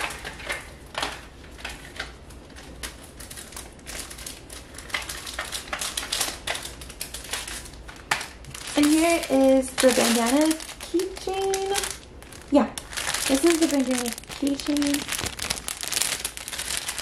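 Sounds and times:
plastic packaging crinkling: 0:00.0 - 0:17.0.

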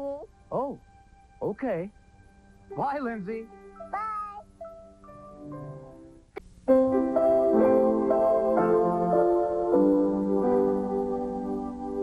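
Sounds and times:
soft background music: 0:00.0 - 0:12.0
girl saying bye: 0:03.8 - 0:04.5.

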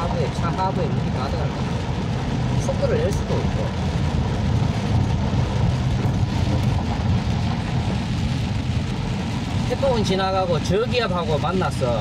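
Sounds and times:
rain against windshield: 0:00.0 - 0:12.0.

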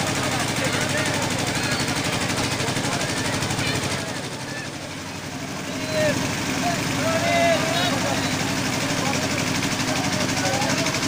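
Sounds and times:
crowd chatter: 0:00.0 - 0:11.0
engine running with low pulsing: 0:00.0 - 0:11.0.

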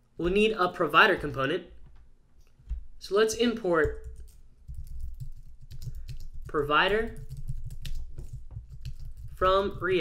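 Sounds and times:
computer keyboard typing: 0:03.8 - 0:10.0.

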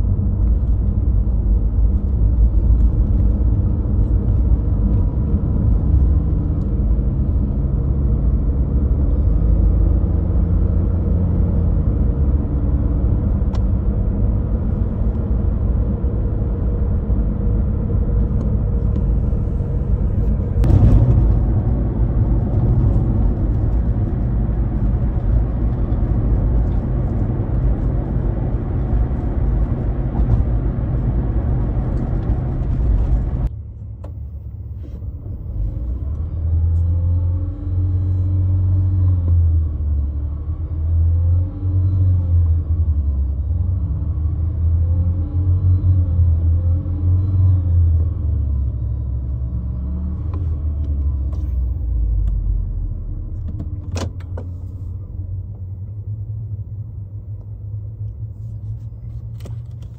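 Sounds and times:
road and tyre rumble: 0:00.0 - 0:59.9.

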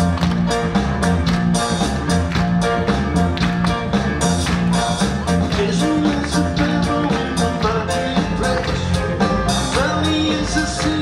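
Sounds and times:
bass guitar: 0:00.0 - 0:11.0
drums: 0:00.0 - 0:11.0
keyboards: 0:00.0 - 0:11.0
man singing through pa: 0:05.5 - 0:09.0, 0:09.7 - 0:11.0.

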